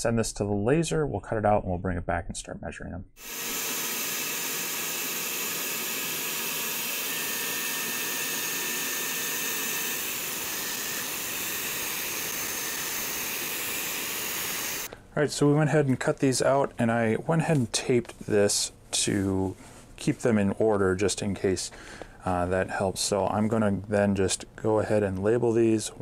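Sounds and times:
faint high whine: 3.2s - 14.9s
laser engraver air hiss: 3.2s - 14.9s.

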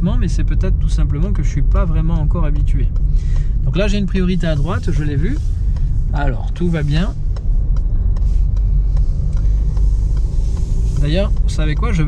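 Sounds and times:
tyre and road noise in car: 0.0s - 12.0s.

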